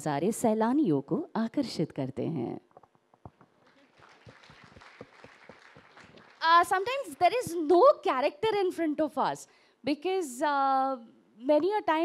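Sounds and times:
faint audience applause: 3.5s - 6.5s.

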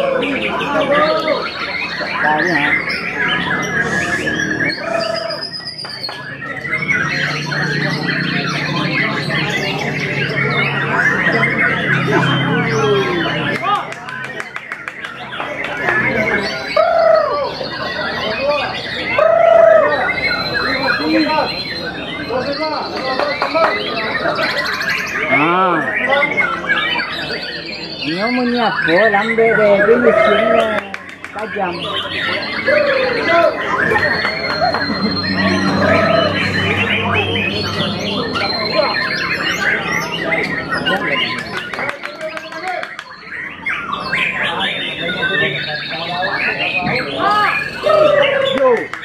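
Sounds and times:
murmur of voices: 0.0s - 49.0s
songbirds chirping: 0.0s - 49.0s.

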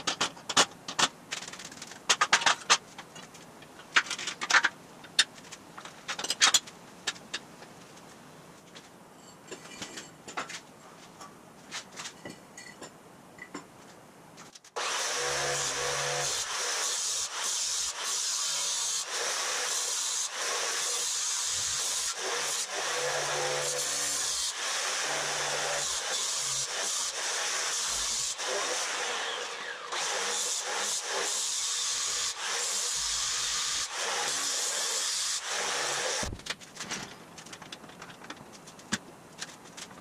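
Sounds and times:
angle grinder cutting metal: 14.8s - 36.3s.

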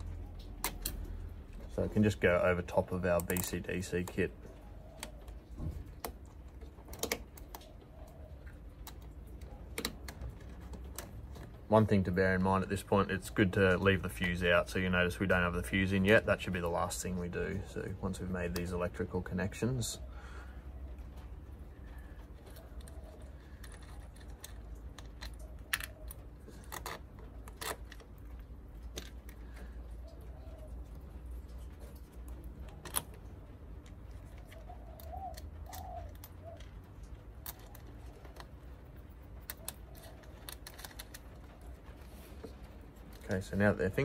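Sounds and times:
low steady background hum: 0.0s - 44.0s
small metallic clicks and rattles: 2.8s - 4.3s, 31.2s - 44.0s.

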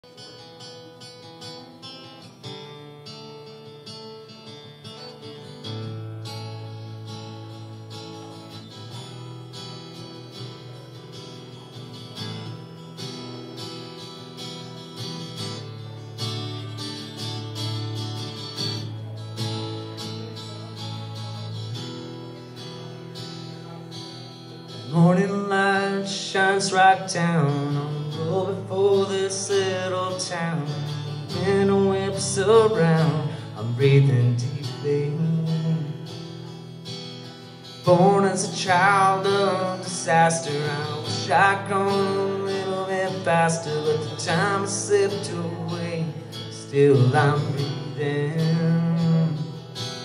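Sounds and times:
acoustic guitar playing: 0.0s - 50.0s
man singing: 24.5s - 36.6s, 37.8s - 50.0s.

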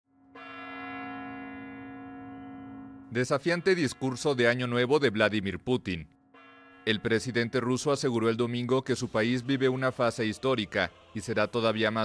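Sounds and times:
clock bell striking: 0.3s - 5.1s.

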